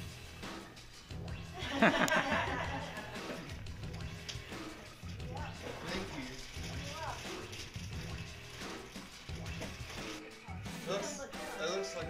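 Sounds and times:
background music: 0.0 - 12.0
voices in a room: 2.2 - 12.0.

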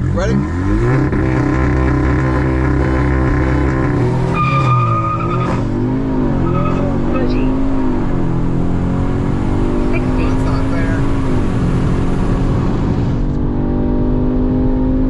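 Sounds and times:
car engine at full throttle: 0.0 - 15.0
road and wind noise: 0.0 - 15.0.

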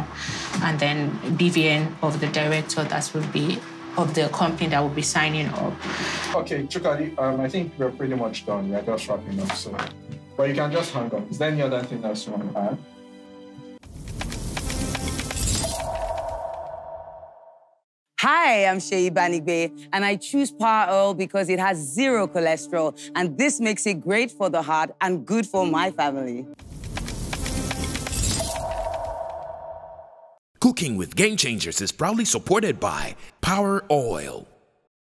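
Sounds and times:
rapid sharp clicks: 14.0 - 16.0, 26.6 - 28.7
ringing tone: 15.4 - 17.7, 28.1 - 30.4.

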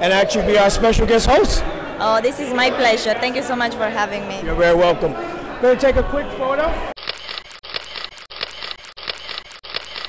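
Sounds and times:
camera shutter clicking in bursts: 7.0 - 10.0.

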